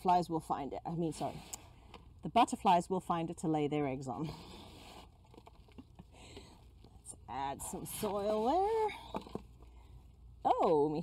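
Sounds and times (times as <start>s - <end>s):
hands working potting soil: 0.0s - 11.0s.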